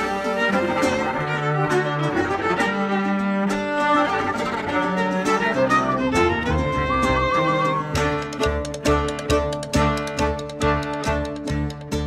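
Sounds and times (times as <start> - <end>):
fiddle folk music: 0.0 - 12.0.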